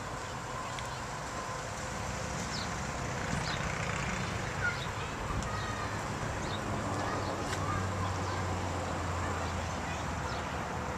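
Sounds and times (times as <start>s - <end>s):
distant traffic rumble: 0.0s - 10.9s.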